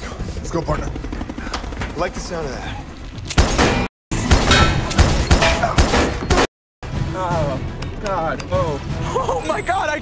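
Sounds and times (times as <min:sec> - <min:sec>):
sharp bangs and hits: 0:03.3 - 0:07.0
action film music: 0:04.1 - 0:10.0.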